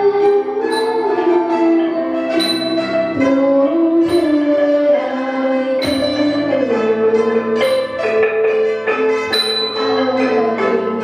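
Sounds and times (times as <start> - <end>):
hammered dulcimer: 0.0 - 11.0
xylophones: 0.6 - 4.6, 5.7 - 6.8, 7.4 - 11.0.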